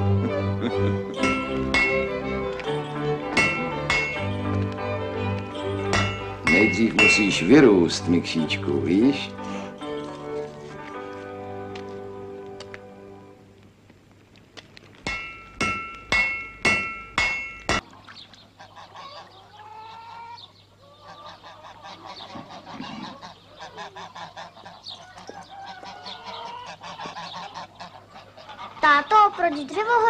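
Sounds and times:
geese honking: 0.0s - 13.3s, 18.5s - 29.8s
ringing metallic strikes: 1.2s - 8.4s, 15.1s - 17.8s.

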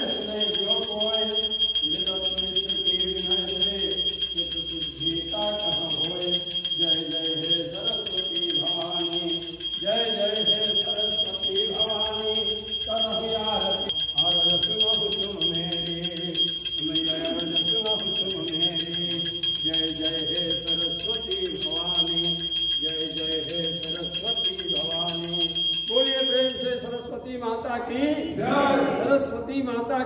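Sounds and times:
bell ringing: 0.0s - 27.1s
group of voices singing: 0.0s - 30.0s.

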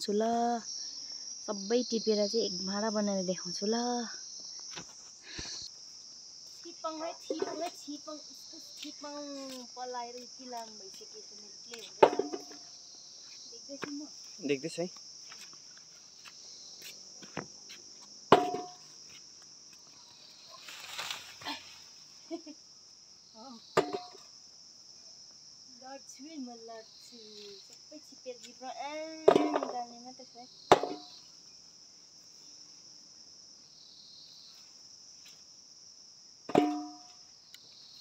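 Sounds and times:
insects chirring: 0.0s - 38.0s
faint rustles: 19.0s - 22.4s.

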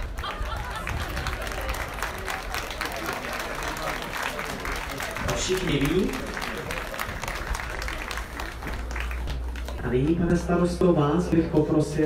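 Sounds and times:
crowd applauding: 0.0s - 10.2s.

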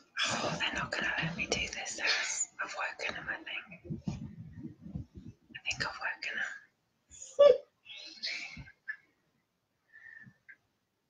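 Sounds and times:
woman whispering: 0.3s - 4.2s, 4.9s - 6.7s, 7.8s - 8.8s.

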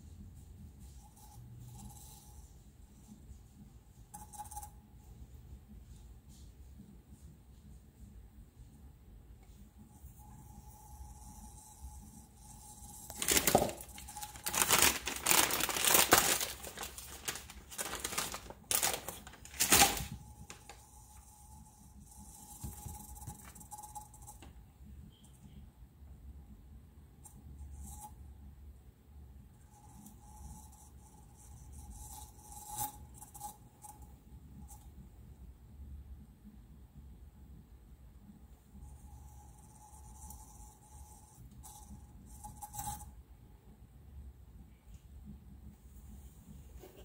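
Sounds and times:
material crinkling and tearing: 13.1s - 20.8s.

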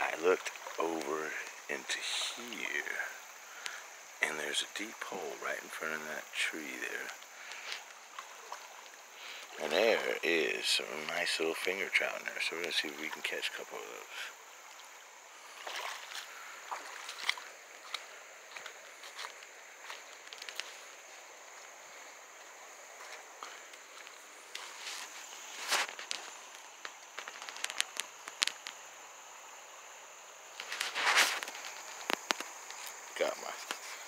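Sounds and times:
faint high-pitched hiss: 0.0s - 34.0s
footsteps crunching on leaves: 15.4s - 28.0s, 30.6s - 33.0s.

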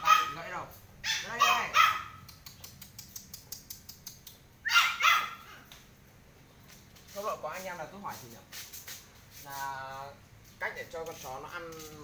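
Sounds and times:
puppy barking: 0.0s - 2.3s, 4.6s - 5.6s
faint repeated clicks: 2.2s - 4.5s.

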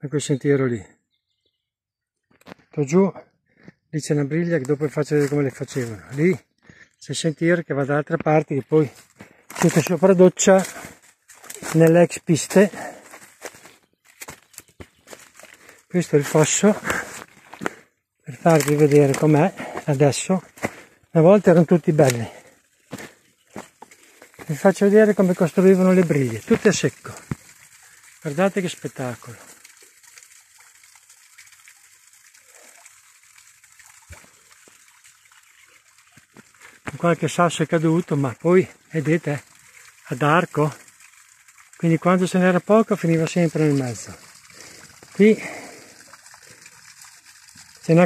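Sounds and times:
footsteps on dry leaves: 10.6s - 12.0s, 12.8s - 17.7s, 22.0s - 26.6s
faint outdoor hiss: 17.7s - 48.0s.

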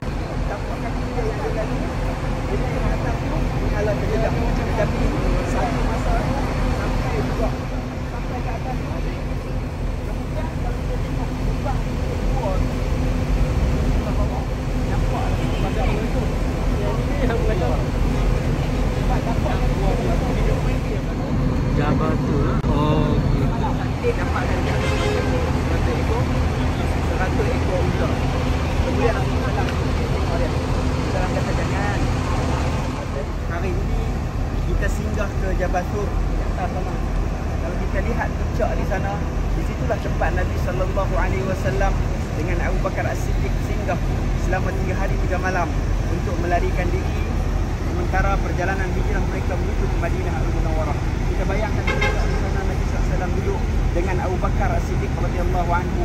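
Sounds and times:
indistinct chatter of voices: 0.0s - 56.0s
vehicle running rumble: 0.0s - 56.0s.

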